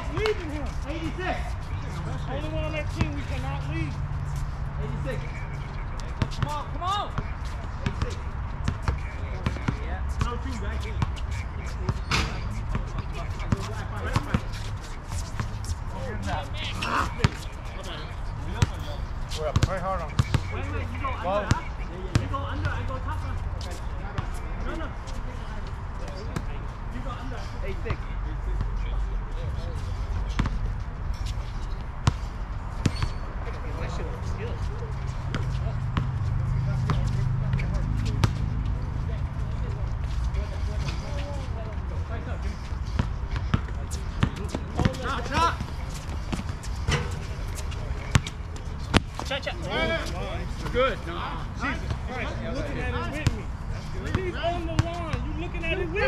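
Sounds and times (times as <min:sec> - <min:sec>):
players calling out: 0:15.1 - 0:23.8
basketball bouncing on hard court: 0:19.6 - 0:20.5.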